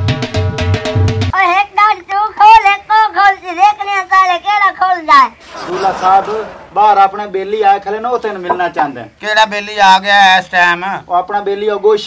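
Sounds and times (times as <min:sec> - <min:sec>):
drum-led music: 0:00.0 - 0:01.3.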